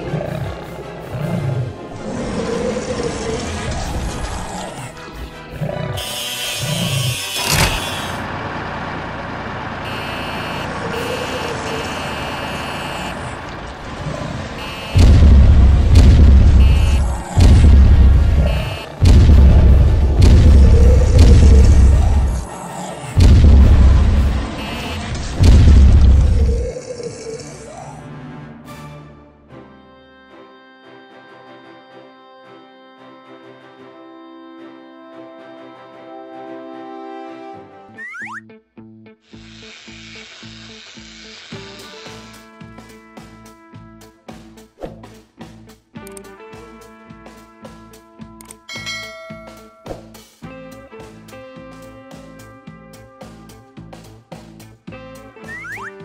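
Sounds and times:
background music: 0.0s - 8.2s, 27.5s - 38.7s, 41.7s - 56.0s
deep cannon booms: 14.9s - 22.4s, 23.2s - 26.6s.

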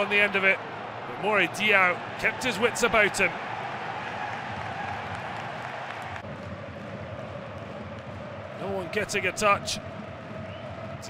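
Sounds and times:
stadium crowd hubbub: 0.0s - 11.0s.

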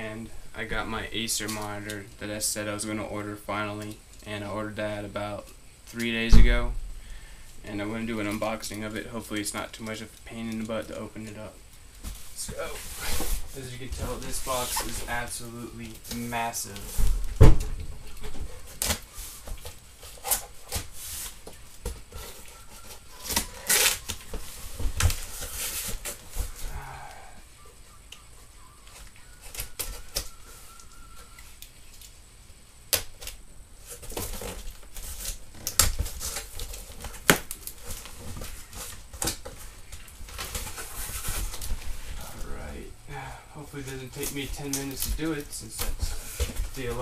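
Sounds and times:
tape and cardboard tearing: 12.0s - 15.3s, 16.0s - 26.6s, 32.9s - 39.6s.

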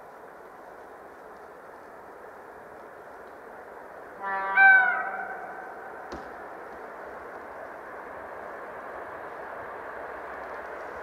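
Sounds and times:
steady background noise: 0.0s - 11.0s
locomotive horn two-tone blast: 4.2s - 5.6s.

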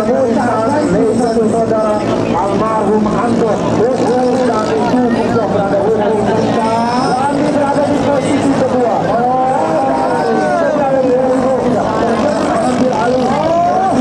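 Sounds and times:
boat engine droning: 0.0s - 14.0s
man talking loudly: 0.0s - 14.0s.

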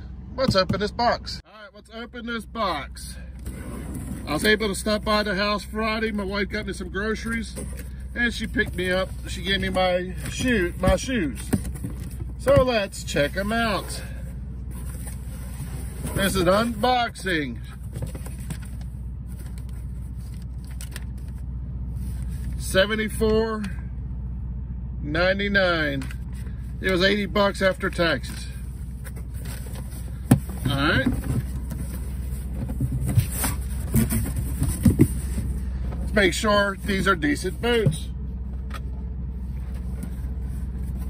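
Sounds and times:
low engine-like rumble: 0.0s - 41.0s
steady low hum: 0.0s - 41.0s
cardboard scraping: 7.2s - 17.0s, 28.2s - 36.2s.

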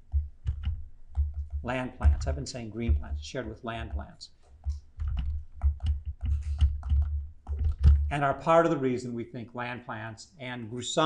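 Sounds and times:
stylus tapping on pen tablet: 0.0s - 8.1s.

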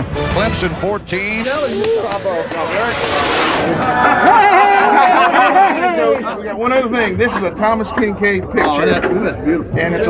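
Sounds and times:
crowd noise: 1.4s - 10.0s
men talking and laughing: 3.8s - 10.0s.

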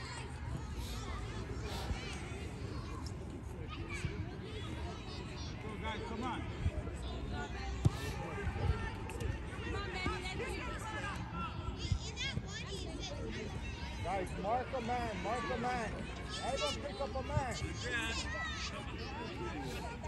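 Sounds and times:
voices calling across a field: 0.0s - 20.0s.

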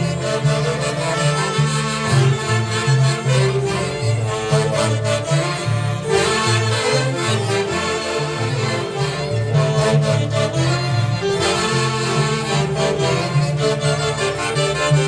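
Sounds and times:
plucked harp bass line: 0.0s - 15.0s
saxophones and clarinets melody: 0.0s - 15.0s
violin: 0.0s - 15.0s.

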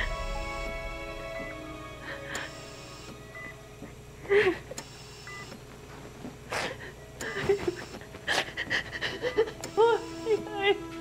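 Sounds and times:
woman sobbing: 4.2s - 4.8s, 6.6s - 10.9s.

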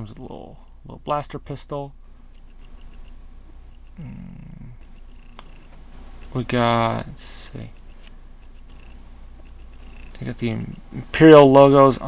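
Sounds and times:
cat purring: 2.4s - 12.0s.

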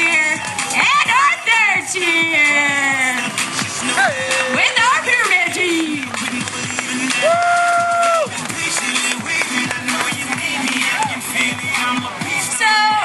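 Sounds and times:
music over outdoor loudspeakers: 0.0s - 13.0s.

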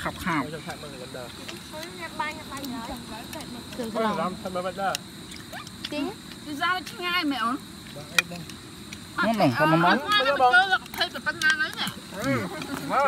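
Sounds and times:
night insects droning: 0.0s - 13.0s
people talking: 9.2s - 13.0s.

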